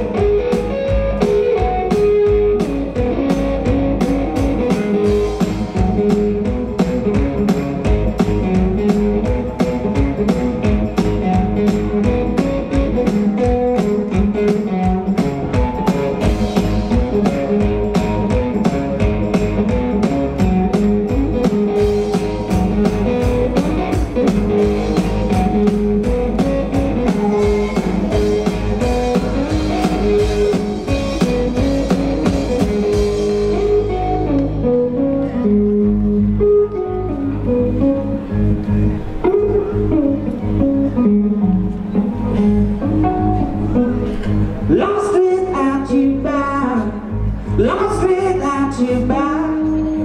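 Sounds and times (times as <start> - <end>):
steady drum beat: 0.0 - 33.8
electric guitar playing: 0.0 - 50.0.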